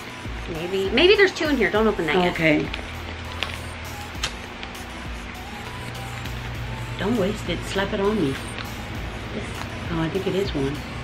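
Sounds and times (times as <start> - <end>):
background music: 0.0 - 11.0
sachet crackling and tearing: 1.8 - 6.6.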